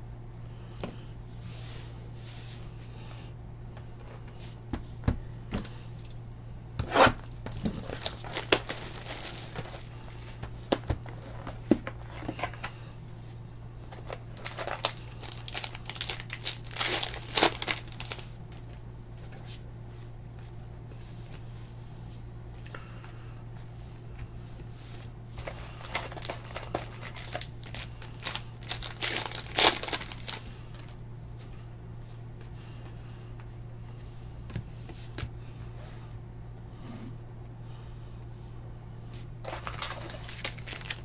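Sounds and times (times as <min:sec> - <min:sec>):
steady low hum: 0:00.0 - 0:41.0
packaging crinkling and tearing: 0:06.8 - 0:10.4, 0:14.0 - 0:18.8, 0:25.4 - 0:31.0, 0:39.4 - 0:41.0.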